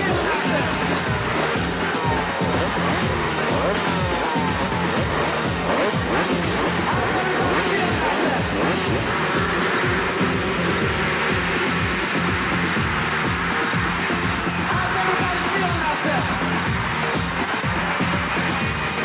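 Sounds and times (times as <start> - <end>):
motocross bikes revving: 0.0 - 19.0
music: 0.0 - 19.0.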